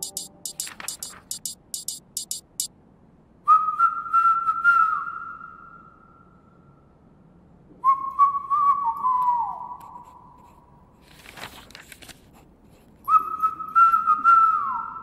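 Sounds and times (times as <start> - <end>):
high whistling notes: 0.0 - 2.6.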